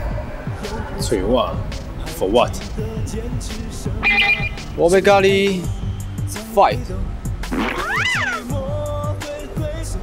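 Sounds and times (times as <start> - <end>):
background music with steady beat: 0.0 - 10.0
cat-like meow: 7.7 - 8.4.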